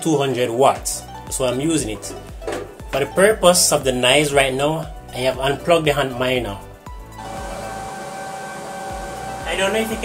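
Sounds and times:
cooling fans rushing: 7.2 - 10.0
steady whine: 7.2 - 10.0.

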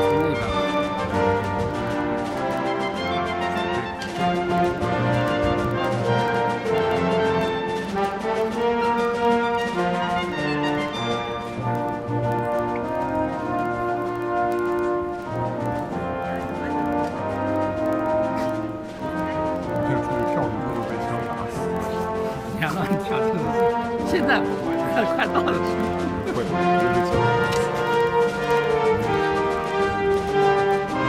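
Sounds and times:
brass music with held chords: 0.0 - 31.0.

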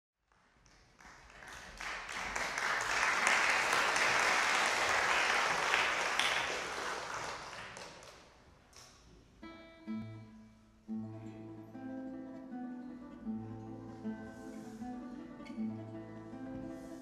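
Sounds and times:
audience applauding: 0.3 - 8.4.

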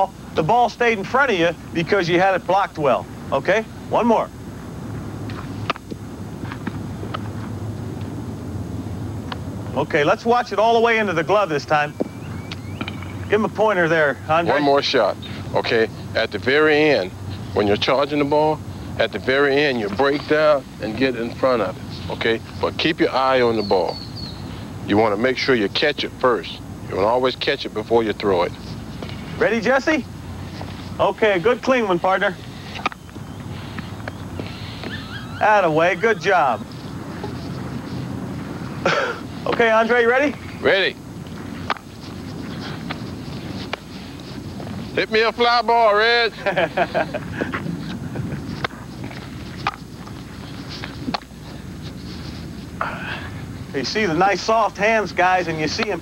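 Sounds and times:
low outdoor hum: 0.0 - 56.0
steady background hiss: 0.0 - 56.0.

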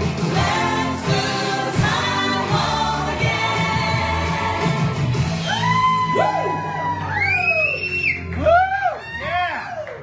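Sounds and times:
karaoke backing music: 0.0 - 9.9
high whoops: 5.4 - 10.0.

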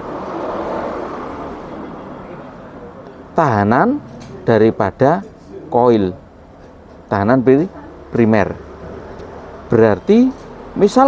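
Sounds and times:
passing vehicle rushing hum: 0.0 - 4.8, 7.9 - 10.8.

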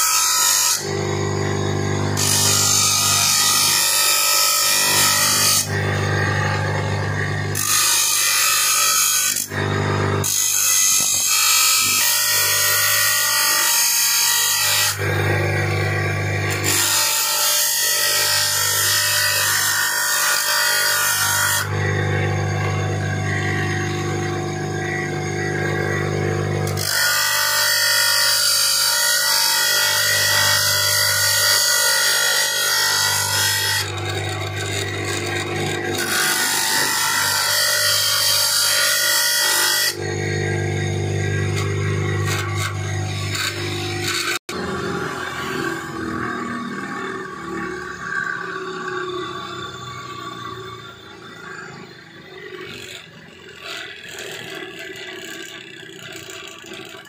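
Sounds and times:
bench grinder motor humming: 0.0 - 57.0
harsh grinding of steel: 0.0 - 57.0.

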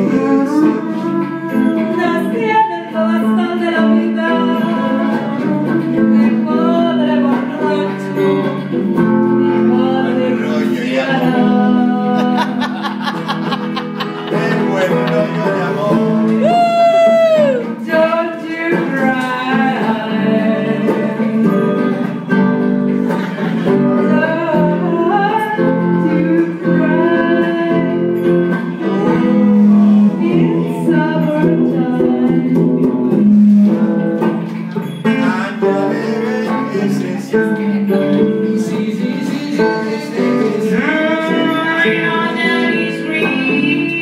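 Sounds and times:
woman singing: 0.0 - 12.9, 16.4 - 22.5, 23.1 - 44.0
acoustic guitar: 0.0 - 44.0.

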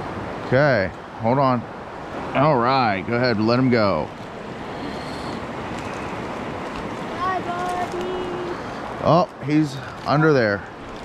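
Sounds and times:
shallow stream flowing: 0.0 - 11.0.

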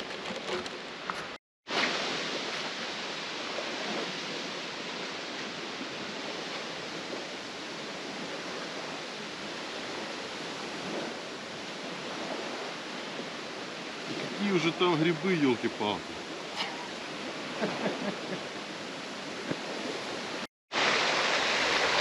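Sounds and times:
waves washing onto shore: 0.0 - 22.0
wind: 0.0 - 22.0.

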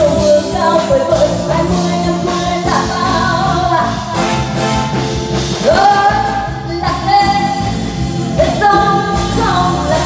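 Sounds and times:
woman singing into microphone: 0.0 - 4.2, 5.6 - 10.0
band accompaniment: 0.0 - 10.0.

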